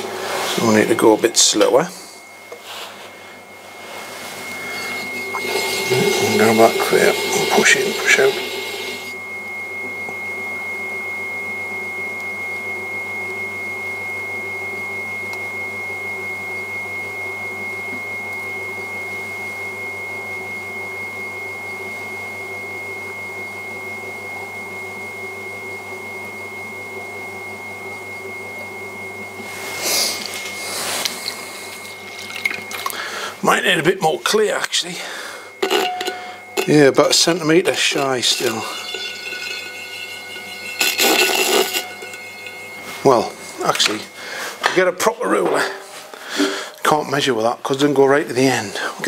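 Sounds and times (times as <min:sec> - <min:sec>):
pottery wheel motor hum: 0:00.0 - 0:49.0
wet splashes in water bowl: 0:31.0 - 0:33.0.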